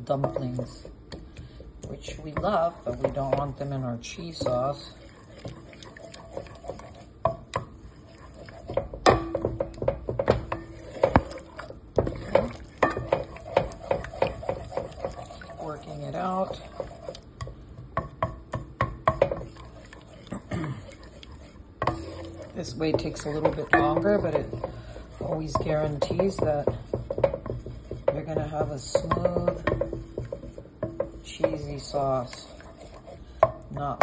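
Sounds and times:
spoon stirring sauce in pan: 0:00.0 - 0:34.0.

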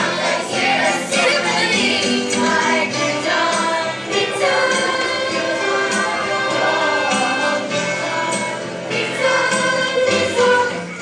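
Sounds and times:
group of people singing: 0:00.0 - 0:11.0.

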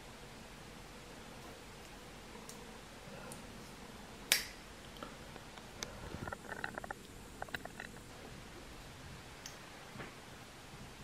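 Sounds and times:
small clicks and rattles: 0:05.4 - 0:08.1.

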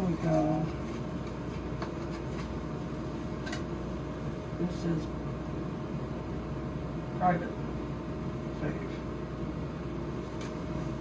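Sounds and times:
low machine hum with thin tone: 0:00.0 - 0:11.0.

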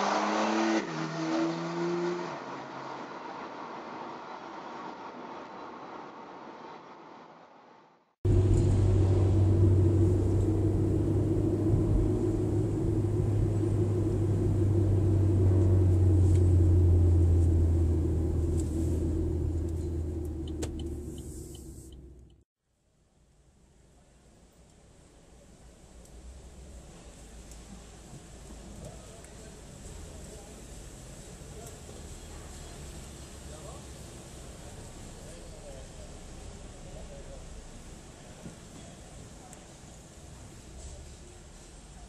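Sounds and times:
car engine and road noise: 0:00.0 - 0:22.5, 0:23.6 - 0:42.0.

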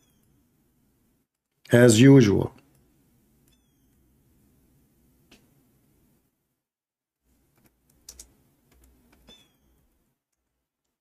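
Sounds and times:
faint keyboard typing: 0:07.3 - 0:11.0.

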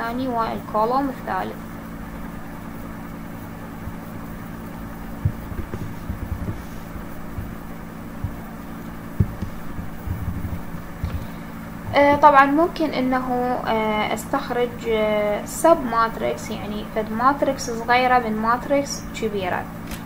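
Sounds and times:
low electrical hum: 0:00.0 - 0:20.0
soft low knocks: 0:05.0 - 0:12.4.

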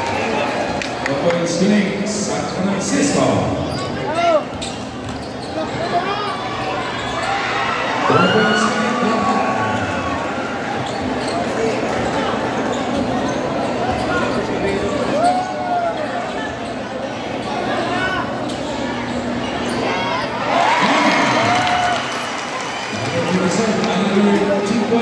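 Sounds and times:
crowd chatter and shouts: 0:00.0 - 0:25.0
sneakers squealing on floor: 0:02.2 - 0:21.5.

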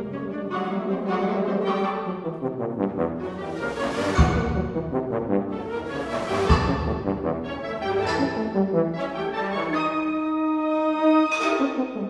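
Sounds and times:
wind ensemble playing: 0:00.0 - 0:12.0
solo tuba: 0:02.1 - 0:12.0
deep percussion stroke: 0:04.0 - 0:09.0.

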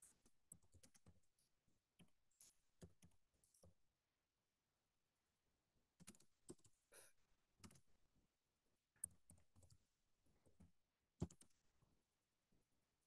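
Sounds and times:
computer keyboard typing: 0:00.2 - 0:01.2, 0:06.0 - 0:06.8, 0:07.6 - 0:07.9, 0:10.6 - 0:11.6.

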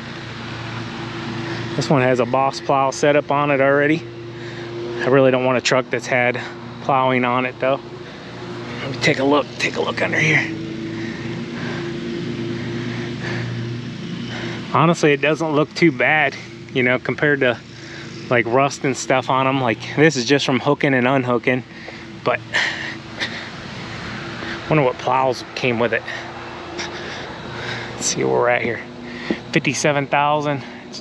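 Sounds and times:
engine humming steadily: 0:00.0 - 0:31.0
steady background noise: 0:00.0 - 0:31.0.

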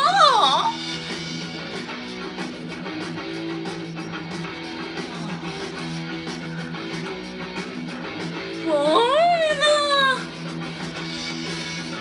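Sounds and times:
strummed guitar music: 0:00.7 - 0:12.0.

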